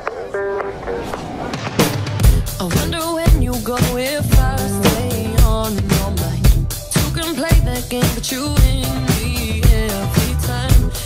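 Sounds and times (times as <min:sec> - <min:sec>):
backing track music: 0:00.0 - 0:11.0
drum kit playing: 0:01.8 - 0:11.0.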